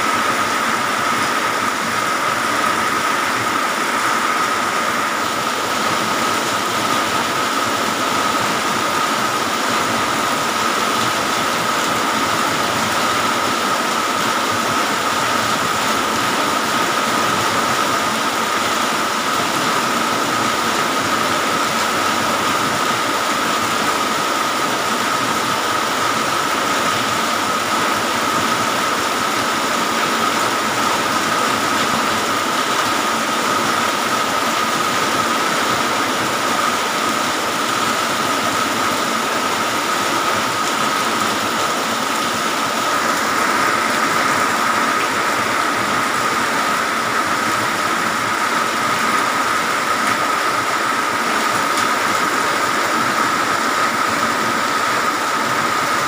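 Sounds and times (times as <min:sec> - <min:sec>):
heavy rain falling: 0:00.0 - 0:56.0.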